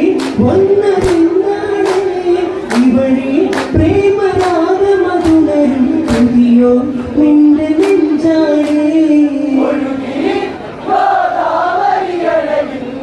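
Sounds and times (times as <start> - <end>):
sharp hand claps: 0.1 - 2.1, 2.7 - 6.4, 7.8 - 8.9.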